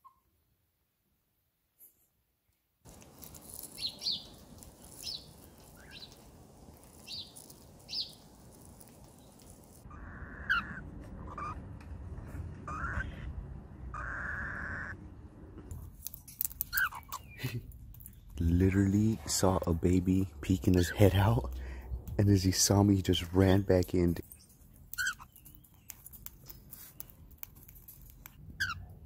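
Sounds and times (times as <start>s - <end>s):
background noise: 0.0s - 29.0s
high bird chirps: 3.2s - 11.6s, 16.6s - 18.4s, 24.2s - 27.2s
raspy chick calls: 3.6s - 8.8s.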